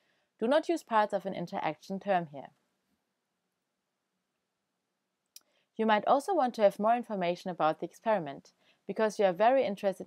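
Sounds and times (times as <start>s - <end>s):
woman speaking: 0.4s - 2.6s, 5.8s - 10.0s.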